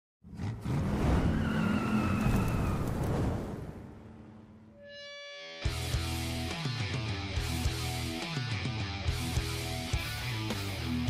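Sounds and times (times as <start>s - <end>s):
tires squealing: 0.3s - 3.7s.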